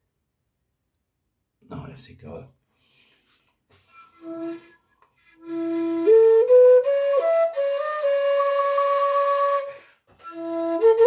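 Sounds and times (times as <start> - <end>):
metal whistle long note: 5.4 - 11.0.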